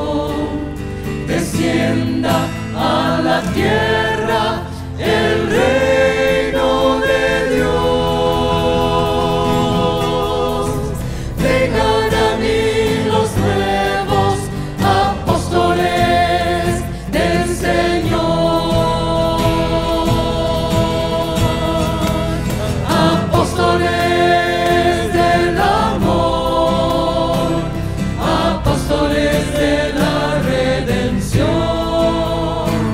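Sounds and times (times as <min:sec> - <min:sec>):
choir singing a hymn: 0:00.0 - 0:32.9
guitar accompaniment: 0:00.0 - 0:32.9.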